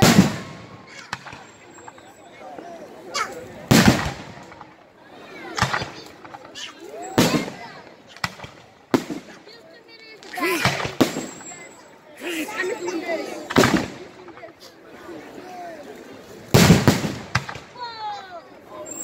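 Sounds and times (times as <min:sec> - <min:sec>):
fireworks bursting: 0:00.0 - 0:02.2, 0:03.6 - 0:04.8, 0:05.4 - 0:09.6, 0:10.2 - 0:11.9, 0:13.4 - 0:14.4, 0:16.5 - 0:18.0.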